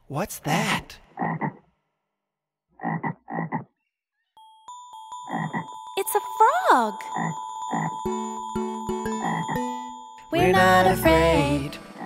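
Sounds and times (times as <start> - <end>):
frog croaking: 1.2 - 1.7, 2.8 - 3.8, 5.3 - 5.6, 7.1 - 8.0, 9.2 - 9.6
music: 4.4 - 12.0.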